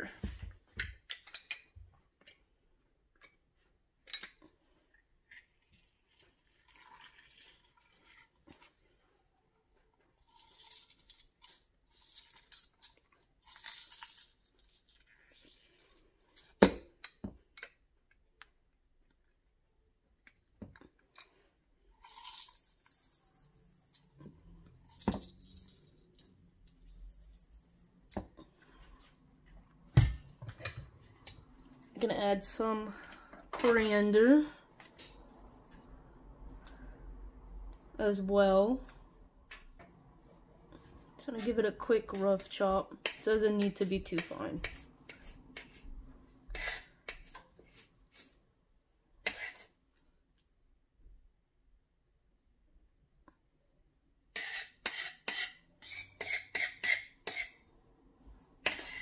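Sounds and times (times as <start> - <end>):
lemon juice squishing and dripping: 9.6 - 16.5.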